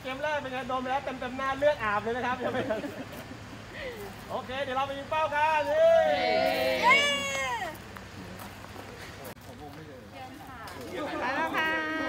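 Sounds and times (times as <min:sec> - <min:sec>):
high voices cheering: 0:05.6 - 0:07.7.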